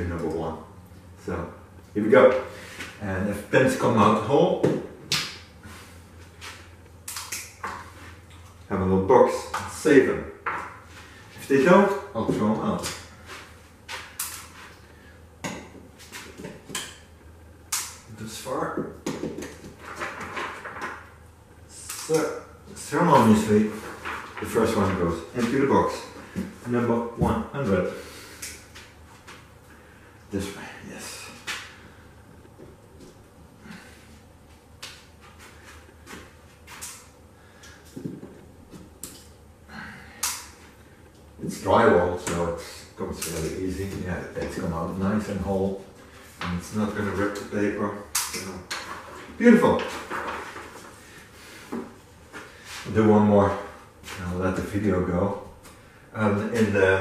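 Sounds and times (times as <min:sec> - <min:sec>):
paper rustling: 0:23.2 - 0:25.6, 0:48.8 - 0:51.0.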